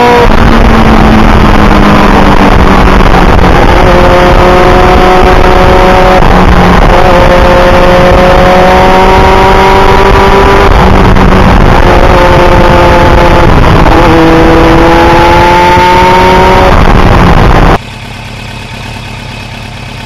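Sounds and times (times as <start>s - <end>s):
wind noise on microphone: 0.0s - 17.8s
motorcycle engine at speed: 0.0s - 20.0s.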